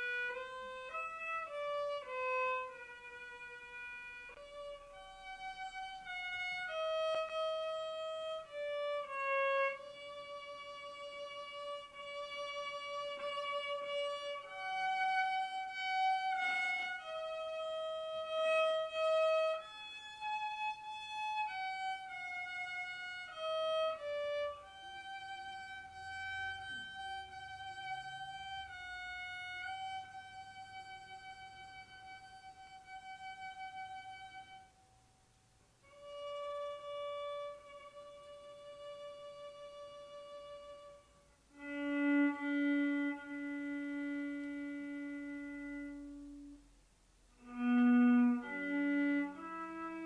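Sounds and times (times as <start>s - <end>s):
solo violin slow melody: 0.0s - 50.0s.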